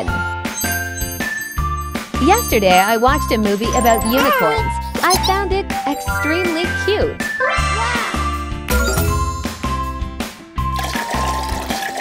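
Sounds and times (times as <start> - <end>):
bell-like melody: 0.0 - 7.3.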